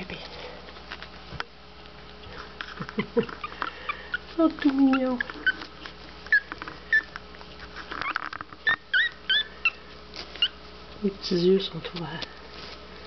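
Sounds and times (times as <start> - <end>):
puppies squeaking and whimpering: 2.0 - 11.0.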